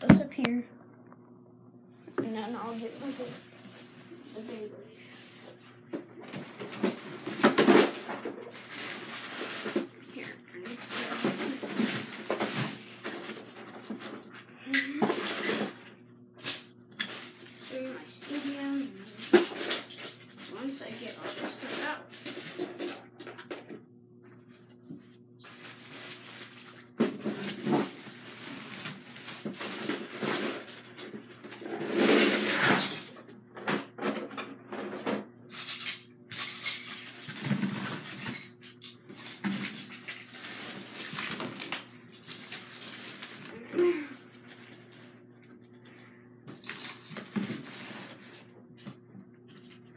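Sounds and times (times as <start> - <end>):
faint steady hum: 0.0 - 49.9.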